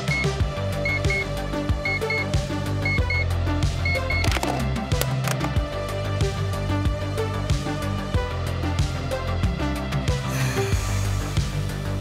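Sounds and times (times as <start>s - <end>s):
alarm clock beeping: 0.0s - 4.4s
electronic music with steady beat: 0.0s - 5.6s.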